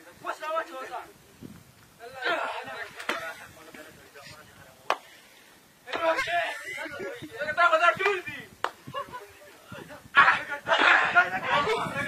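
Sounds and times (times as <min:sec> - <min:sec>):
men's voices: 0:00.0 - 0:12.0.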